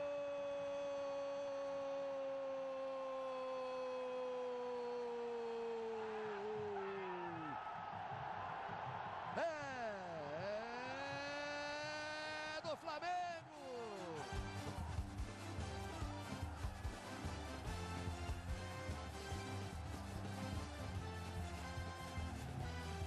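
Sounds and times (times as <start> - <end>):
commentator's long drawn-out cry: 0.0 - 7.6.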